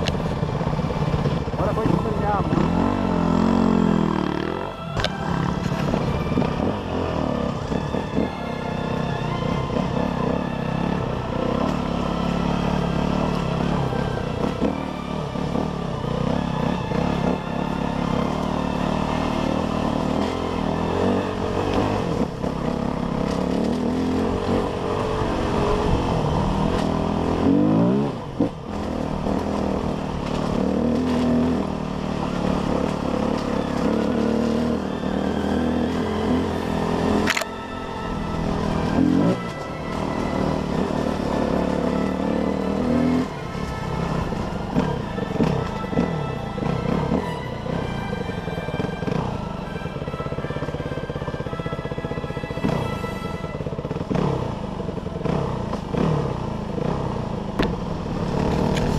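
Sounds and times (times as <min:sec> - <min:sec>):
dirt bike engine revving: 0:00.0 - 0:09.0, 0:09.7 - 0:48.0, 0:53.7 - 0:58.9.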